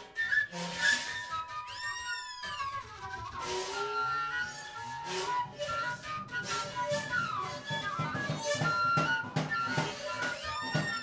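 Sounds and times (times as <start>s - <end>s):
flute long wavering notes: 0.0s - 11.0s
high swooping whistle-like glide: 0.0s - 11.0s.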